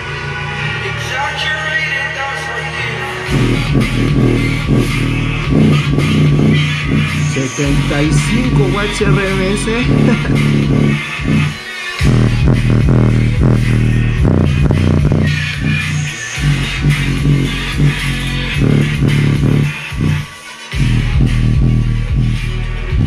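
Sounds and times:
bass-heavy electronic music: 0.0s - 23.0s.

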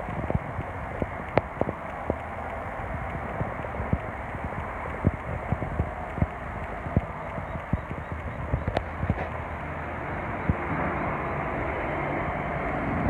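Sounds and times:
steady background hiss: 0.0s - 13.0s.

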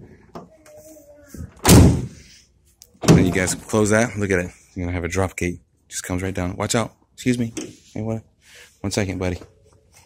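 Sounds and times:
pickup tailgate slam: 1.6s - 2.2s.

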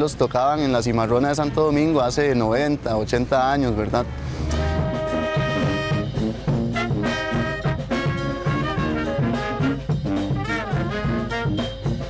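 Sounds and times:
brass band playing: 4.3s - 12.0s.

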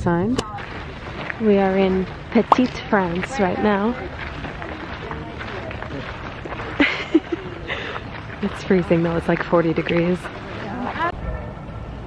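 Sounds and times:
people talking indistinctly: 0.0s - 11.2s.

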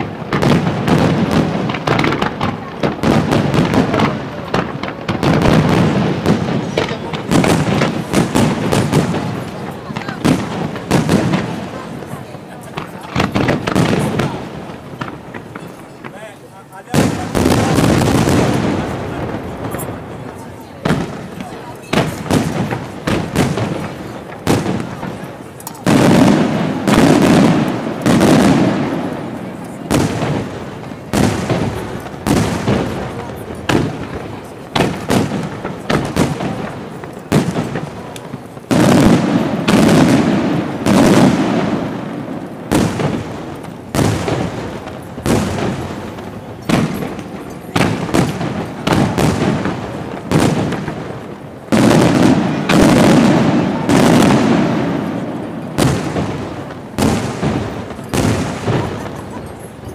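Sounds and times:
firework shells bursting: 0.0s - 59.9s.

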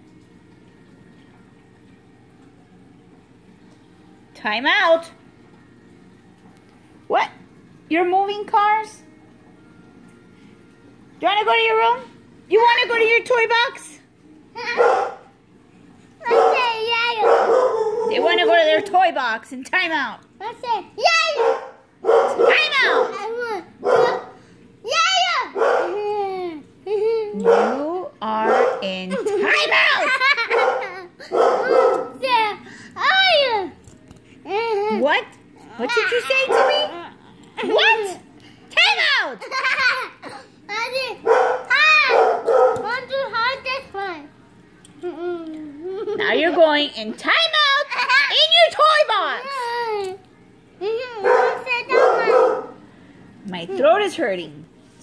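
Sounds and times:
child shouting excitedly: 20.6s - 21.4s, 22.5s - 24.2s, 24.9s - 25.6s, 32.2s - 33.7s, 40.8s - 42.2s.

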